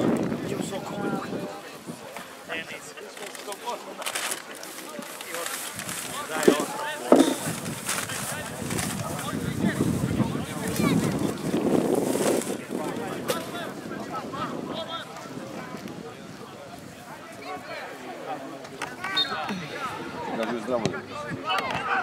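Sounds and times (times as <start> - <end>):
people calling out and chattering: 0.0 - 22.0.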